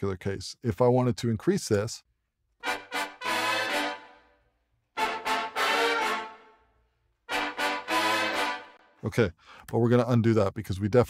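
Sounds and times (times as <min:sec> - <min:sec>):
horn section playing with reverb: 0:02.6 - 0:04.4, 0:05.0 - 0:06.7, 0:07.3 - 0:09.0.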